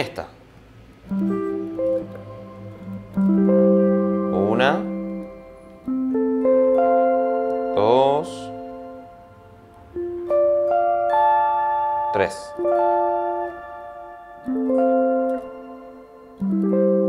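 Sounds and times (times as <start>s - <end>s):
clean electric guitar arpeggios: 1.1s - 17.0s.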